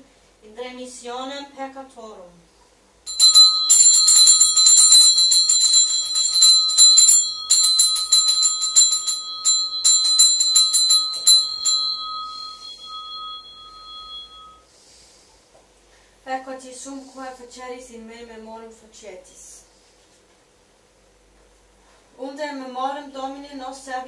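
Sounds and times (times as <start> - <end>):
altar bell ringing rapidly: 3.1 - 14.6.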